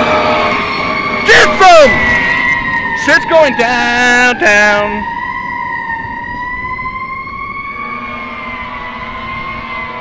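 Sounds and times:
fire truck siren wailing: 0.0 - 10.0.

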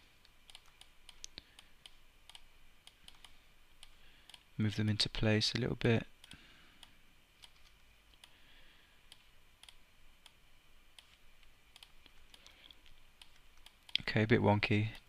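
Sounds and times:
mouse and keyboard clicks: 7.4 - 8.3.

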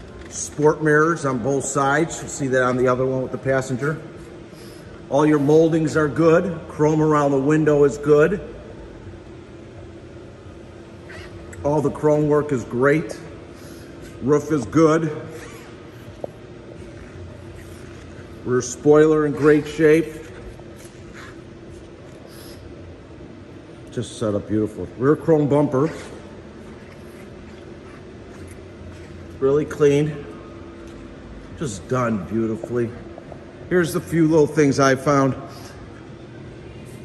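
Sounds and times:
faint hum: 0.0 - 37.0.

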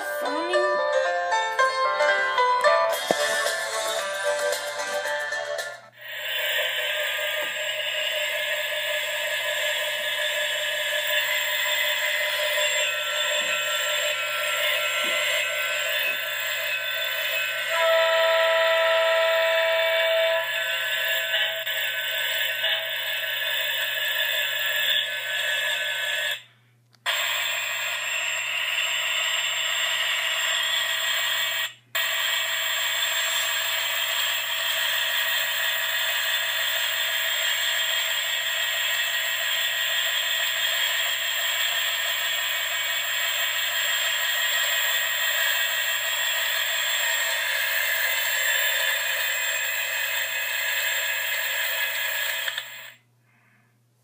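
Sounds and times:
buzzy horn-like tone: 11.2 - 20.7.

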